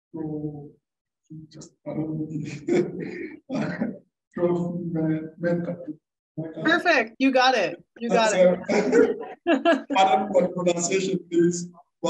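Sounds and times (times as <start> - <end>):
man speaking into microphone: 1.4 - 6.8, 8.1 - 11.9.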